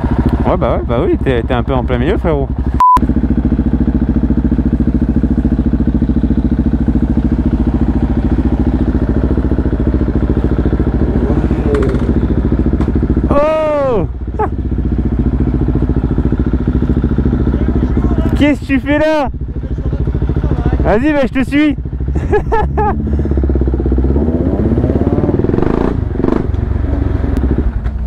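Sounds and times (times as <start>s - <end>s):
motorcycle engine idling: 0.0s - 28.0s.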